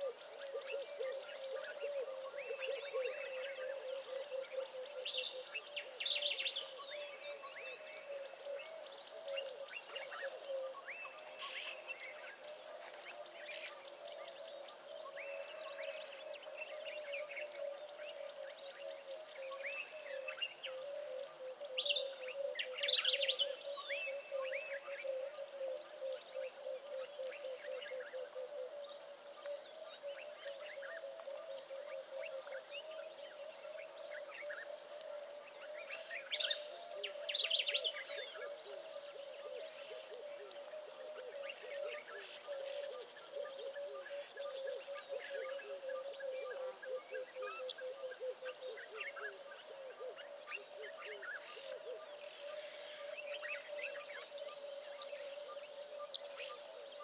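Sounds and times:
bird calls: 0.0s - 57.0s.

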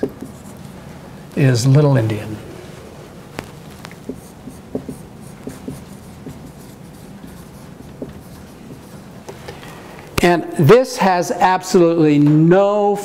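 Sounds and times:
marker writing on whiteboard: 0.0s - 0.6s, 3.4s - 9.6s.

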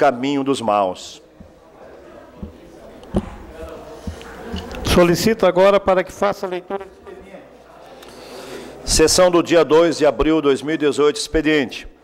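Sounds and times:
man's voice: 4.8s - 6.9s.

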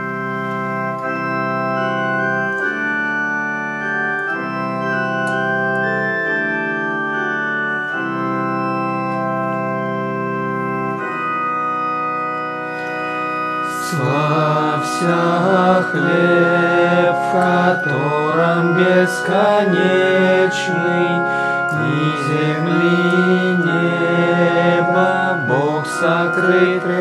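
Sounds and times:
organ playing sustained chords: 0.0s - 27.0s.

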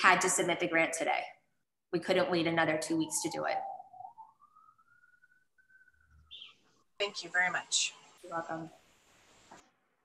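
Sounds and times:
faint whistle-like tone: 2.8s - 6.5s.

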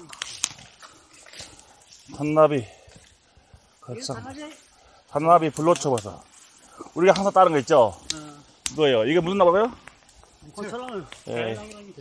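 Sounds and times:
sharp twig clicks: 0.0s - 2.2s, 5.4s - 11.9s
leaves brushing against camera: 0.0s - 12.0s.

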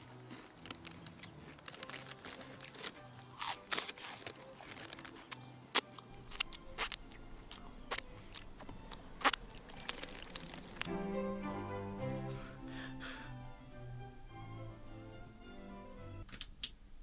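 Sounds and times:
crunching and chewing crisps: 0.0s - 10.9s
mouth and finger-licking sounds: 2.4s - 11.0s.

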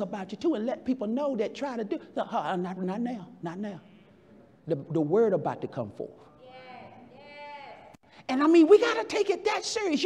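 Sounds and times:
congregation vocal responses: 0.0s - 10.0s.

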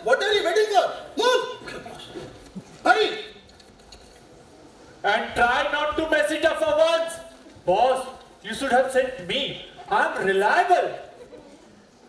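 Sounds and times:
man shouting in a hall: 0.0s - 1.7s, 2.8s - 3.4s.

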